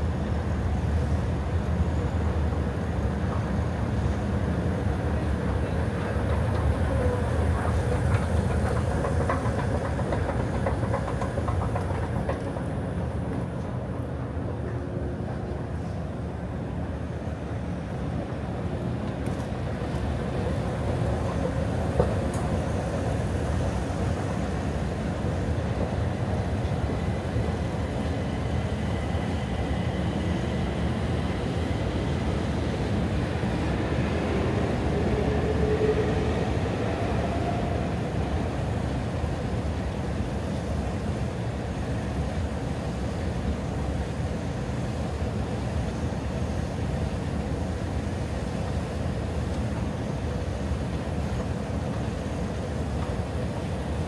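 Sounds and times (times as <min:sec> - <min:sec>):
escalator rumbling: 0:05.4 - 0:13.2.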